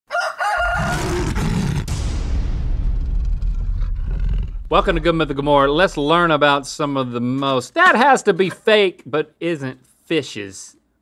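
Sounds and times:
deep rumble: 1.7s - 7.1s.

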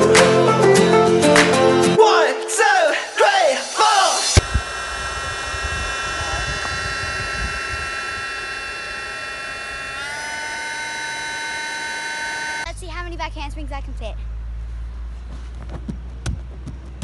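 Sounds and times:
air blower whining: 3.8s - 12.7s.

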